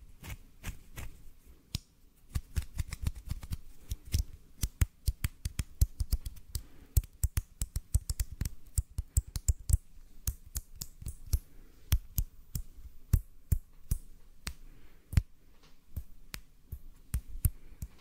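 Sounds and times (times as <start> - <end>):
hands crackling clicks: 1.7 - 18.0.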